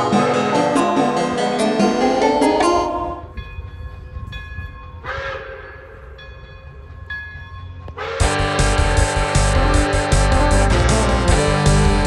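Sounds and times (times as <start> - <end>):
soundtrack music: 0.0 - 3.4, 8.2 - 12.0
low train rumble: 0.0 - 12.0.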